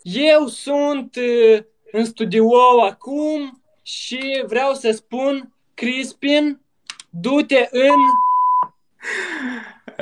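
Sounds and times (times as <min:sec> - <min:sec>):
person speaking: 0:00.0 - 0:08.2
censor bleep: 0:07.8 - 0:08.8.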